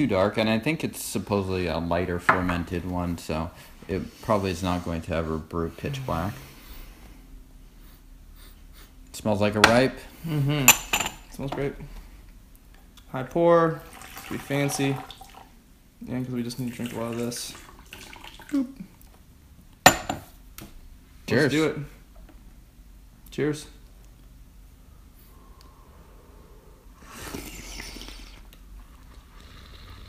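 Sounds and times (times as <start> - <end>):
low steady hum: 0.0 - 30.0
faint sips and breaths: 24.8 - 30.0.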